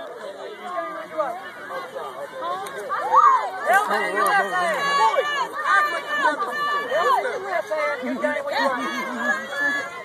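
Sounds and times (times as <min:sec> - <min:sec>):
children's voices chattering: 0:00.0 - 0:10.0.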